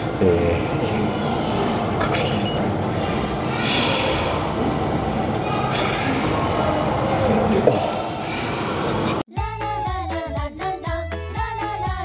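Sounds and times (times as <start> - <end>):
railway station rumble and hum: 0.0 - 9.2.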